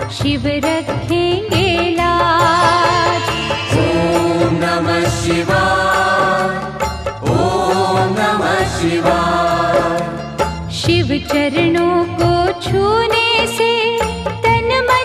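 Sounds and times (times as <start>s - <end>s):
instrumental backing: 0.0s - 15.0s
person chanting: 2.6s - 6.6s.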